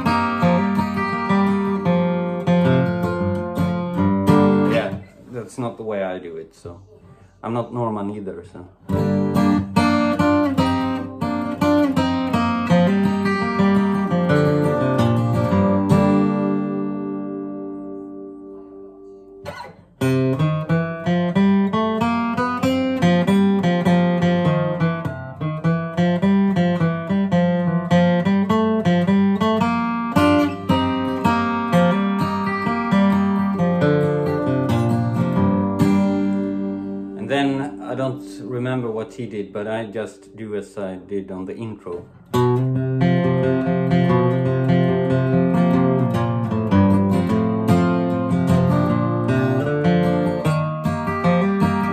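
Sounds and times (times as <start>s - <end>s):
acoustic guitar flatpicking: 0.0s - 6.0s, 8.8s - 51.9s.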